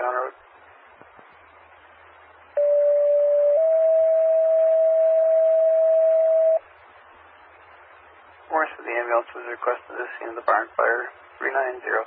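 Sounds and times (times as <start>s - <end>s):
radio hiss: 0.0s - 0.4s, 8.4s - 12.0s
two-tone radio alert tones: 2.6s - 6.6s.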